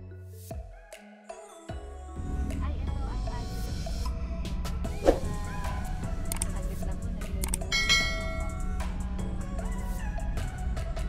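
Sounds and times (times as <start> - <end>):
background music: 0.0 - 11.0
car rumble in motion: 2.2 - 11.0
quick clicks: 6.3 - 6.6, 7.3 - 7.7
bright bell-like chime: 7.7 - 8.6.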